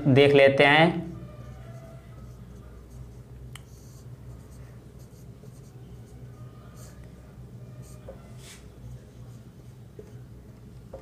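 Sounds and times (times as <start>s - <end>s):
steady low hum: 0.0s - 11.0s
marker pen on whiteboard: 0.9s - 11.0s.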